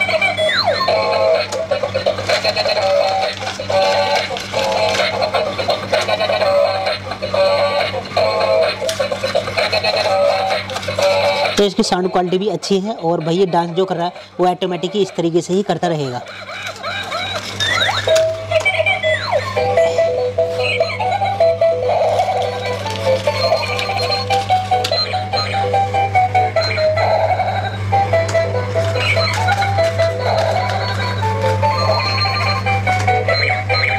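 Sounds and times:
toy electronic tune: 0:00.0 - 0:33.9.

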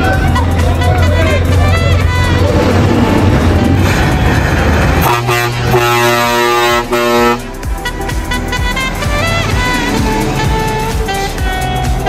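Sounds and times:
low engine rumble: 0:00.0 - 0:12.0
truck air horn blast: 0:00.2 - 0:12.0.

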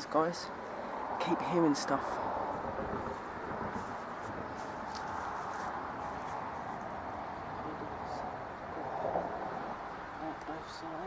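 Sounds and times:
faint high-pitched rustles: 0:03.0 - 0:06.9.

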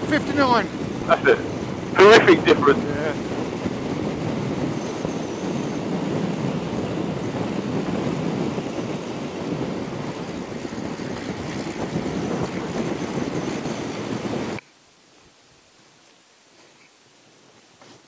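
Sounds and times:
road noise: 0:00.0 - 0:14.6
wind rushing over microphone: 0:00.0 - 0:14.6.

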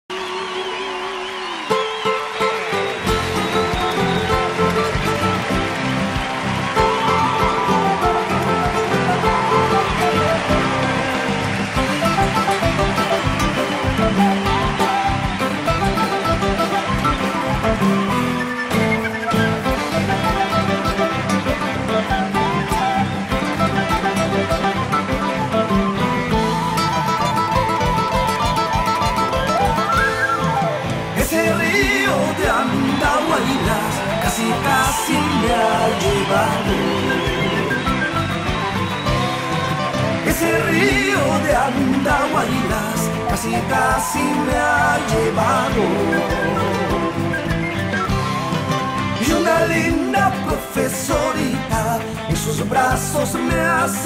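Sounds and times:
guitar: 0:00.0 - 0:54.0
live band playing: 0:00.1 - 0:54.0
drum kit beat: 0:31.2 - 0:53.8.

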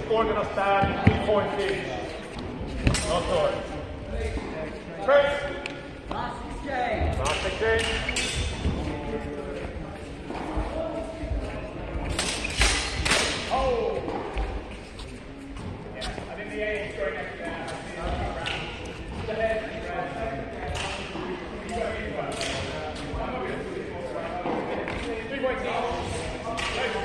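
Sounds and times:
background chatter: 0:00.0 - 0:27.0.

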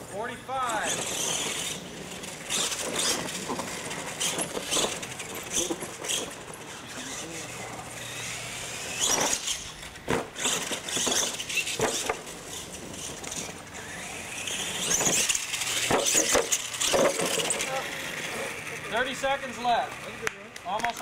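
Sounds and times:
tires scrabbling on dirt: 0:00.0 - 0:20.1
toy truck motor whine: 0:00.6 - 0:20.2.

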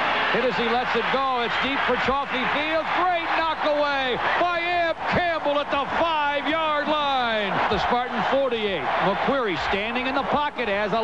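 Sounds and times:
man giving sports commentary: 0:00.1 - 0:11.0.

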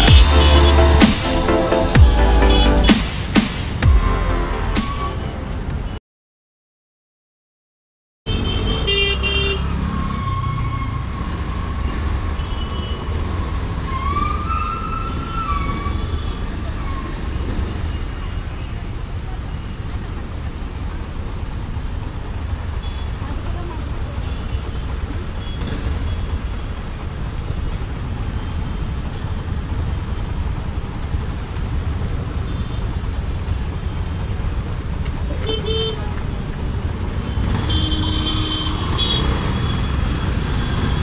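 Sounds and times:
horn honks: 0:00.0 - 0:03.1, 0:08.3 - 0:09.7, 0:35.3 - 0:36.1, 0:37.3 - 0:40.0
traffic engines rumbling: 0:00.0 - 0:06.0, 0:08.3 - 0:41.0.

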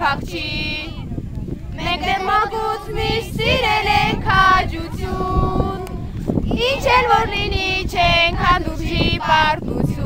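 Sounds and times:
children and women singing: 0:00.0 - 0:01.0, 0:01.8 - 0:10.0.

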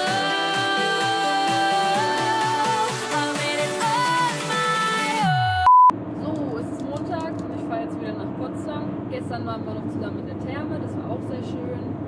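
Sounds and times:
high steady beep: 0:05.6 - 0:05.9.

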